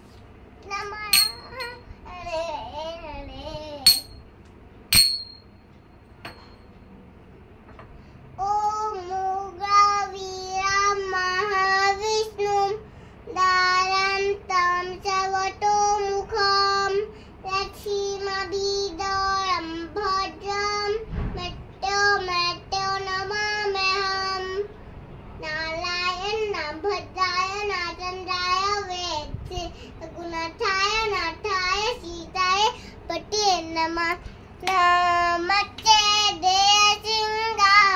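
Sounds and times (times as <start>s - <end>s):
girl singing devotional chant: 0.6s - 3.9s, 8.4s - 24.8s, 25.4s - 37.9s.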